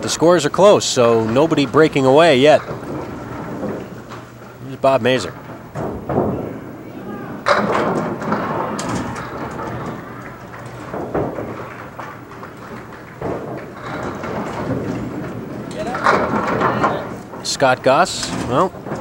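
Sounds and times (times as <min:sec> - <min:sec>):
bowling balls rolling: 0:00.0 - 0:19.0
bowling pins clattering: 0:00.0 - 0:19.0.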